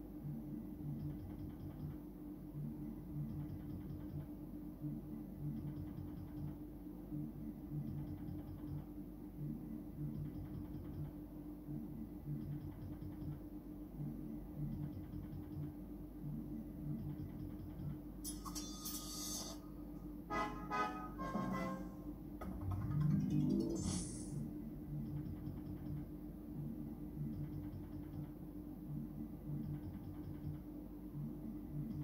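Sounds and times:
slot machine effects: 18.3s - 19.6s, 20.3s - 24.4s
slot machine looping tune: 20.3s - 24.4s
rising electronic tone: 20.3s - 24.5s.

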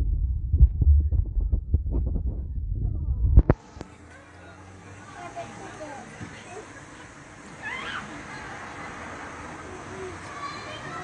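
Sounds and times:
thumps on phone microphone: 0.0s - 3.6s
loud low rumble: 0.0s - 3.7s.

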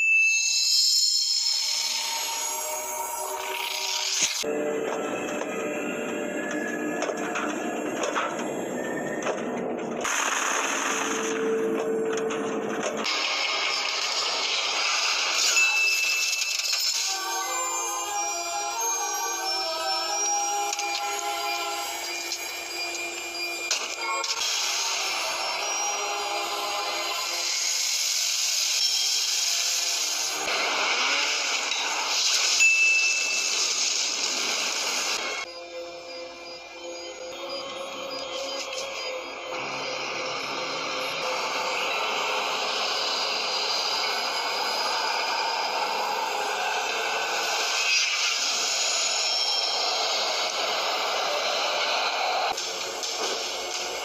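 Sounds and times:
background music: 0.0s - 32.6s, 33.3s - 54.0s.

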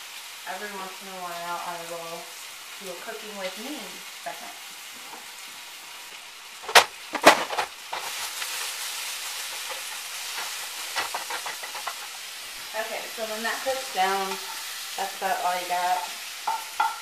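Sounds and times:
spinach sizzling in a skillet: 0.0s - 17.0s
spatula scraping clicks: 9.5s - 12.2s.

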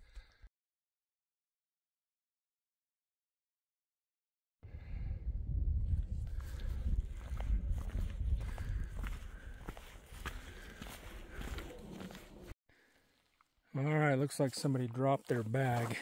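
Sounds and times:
wind rumble on microphone: 4.7s - 11.5s
footsteps on gravel: 6.4s - 12.6s, 14.2s - 16.0s.

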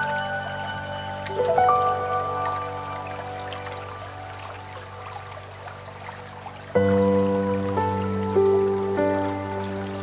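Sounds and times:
slow calm piano music: 0.0s - 10.0s.

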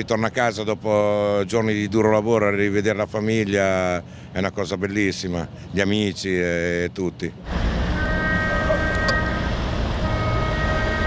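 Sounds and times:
diesel boat engine rumbling: 0.0s - 11.0s.

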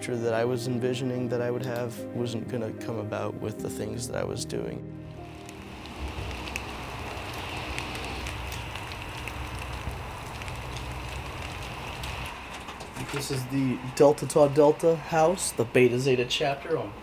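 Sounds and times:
outdoor ambient hiss: 4.1s - 17.0s.

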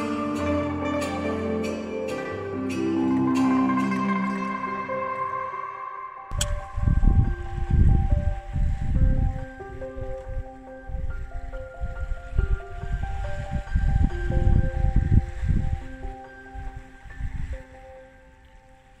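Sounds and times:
slow gentle instrumental music: 0.0s - 19.0s
wind buffeting microphone: 6.3s - 19.0s.

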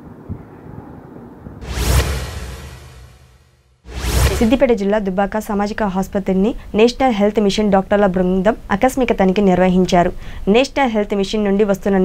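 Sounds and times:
short whoosh: 1.6s - 4.8s
woman speaking: 4.3s - 12.0s.

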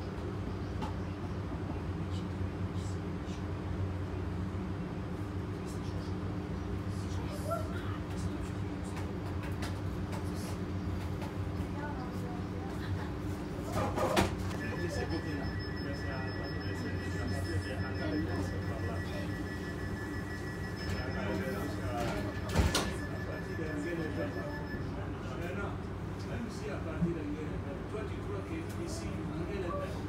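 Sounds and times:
electrical and ventilation hum: 0.0s - 30.0s
thin high whine: 14.5s - 25.0s.

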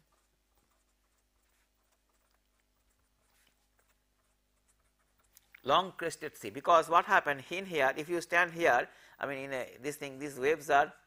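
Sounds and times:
pen scratching while writing: 0.0s - 5.6s.

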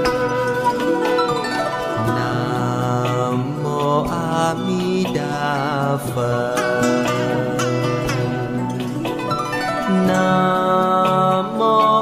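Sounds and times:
plucked strings: 0.0s - 12.0s.

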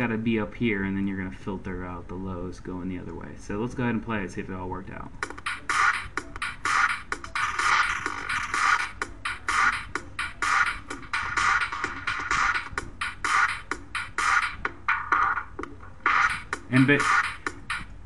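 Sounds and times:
electronic dance track with filter: 5.2s - 18.0s.

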